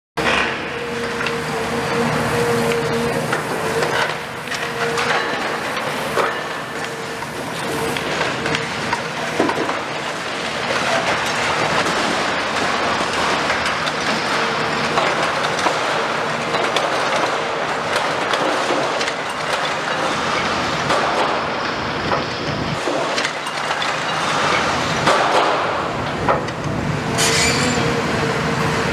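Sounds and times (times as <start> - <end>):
excavator engine under load: 0.2 - 28.9
scraping and clanking: 27.2 - 27.9.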